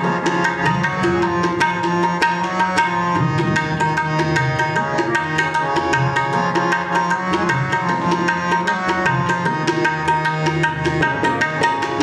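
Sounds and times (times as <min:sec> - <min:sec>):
harmonium sustained tones: 0:00.0 - 0:12.0
tabla strokes: 0:00.0 - 0:12.0.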